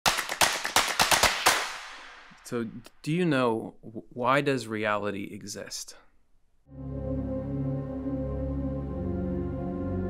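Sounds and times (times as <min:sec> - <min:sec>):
rapid sharp cracks: 0:00.0 - 0:02.4.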